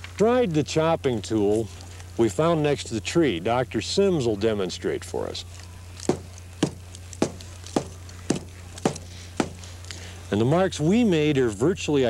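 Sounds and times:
stone tool striking tree trunk: 6.0s - 9.8s.

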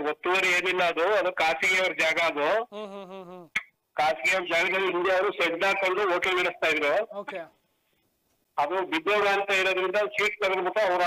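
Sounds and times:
man speaking: 0.0s - 7.5s, 8.6s - 11.0s
drawn-out wavering voice: 2.7s - 3.5s.

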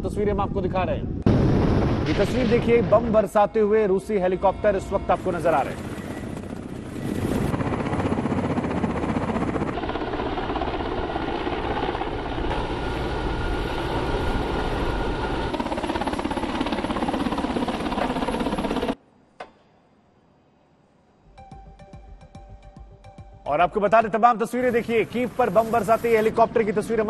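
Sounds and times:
helicopters flying low past: 4.1s - 19.0s.

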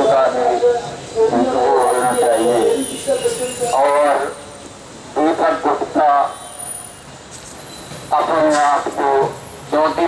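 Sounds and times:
man speaking through microphone: 0.0s - 6.5s, 8.1s - 10.0s
faint steady background noise: 0.0s - 10.0s.

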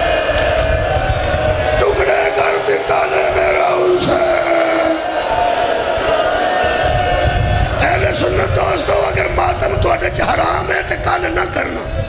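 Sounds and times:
crowd crying: 0.0s - 12.0s
men wailing over microphone: 0.0s - 12.0s.

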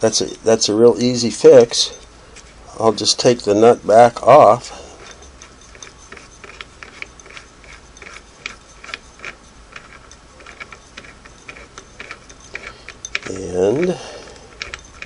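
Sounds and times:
light metallic clicks and ticks: 8.0s - 15.0s.

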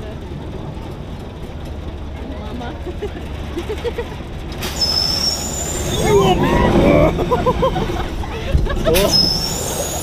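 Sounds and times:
steady low rumble: 0.0s - 4.6s, 5.7s - 9.0s
high-pitched metallic squeal: 4.7s - 6.4s, 9.0s - 10.0s.

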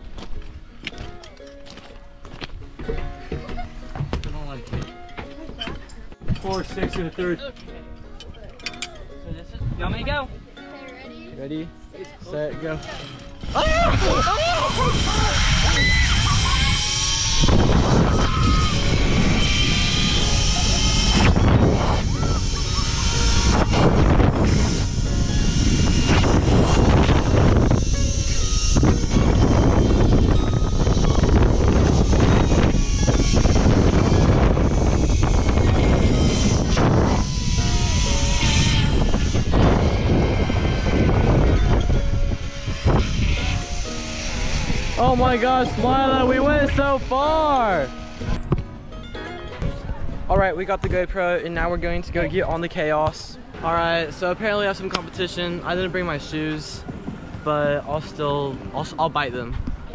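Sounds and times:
trolley running along cable: 12.6s - 49.8s
wind buffeting microphone: 12.8s - 59.9s.

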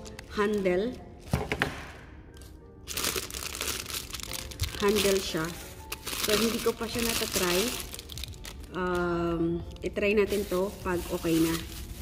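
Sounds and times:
plastic bag crinkling: 2.8s - 12.0s.

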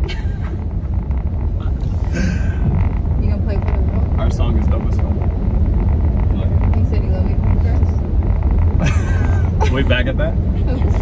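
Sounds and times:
laughter: 0.0s - 0.6s, 8.8s - 9.9s
car road noise rumble: 0.0s - 11.0s.

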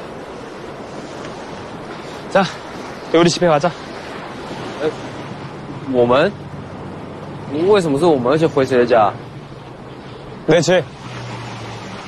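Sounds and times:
surf: 0.0s - 12.0s
wind: 0.0s - 12.0s.

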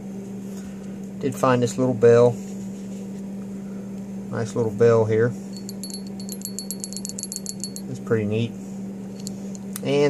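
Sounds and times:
small metal bell tinkling: 5.5s - 8.0s.

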